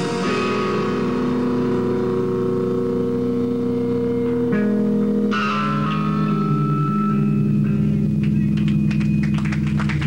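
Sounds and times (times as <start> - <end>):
electric guitar chord ringing: 0.0 - 9.9.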